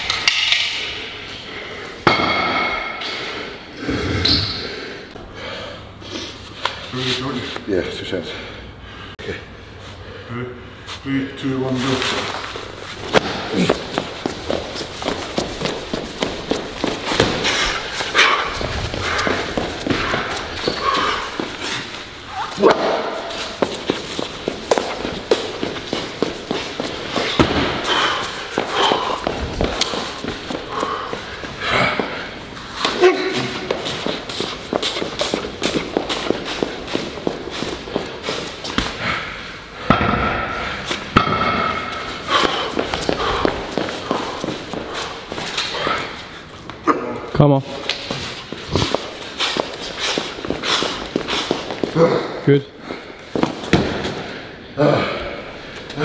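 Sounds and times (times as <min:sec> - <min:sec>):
quick heavy footsteps: 0:11.8 - 0:39.2, 0:40.6 - 0:46.1, 0:47.8 - 0:54.4
people grunting and shouting: 0:13.1 - 0:14.0, 0:17.2 - 0:23.6, 0:25.9 - 0:34.3, 0:50.5 - 0:56.0.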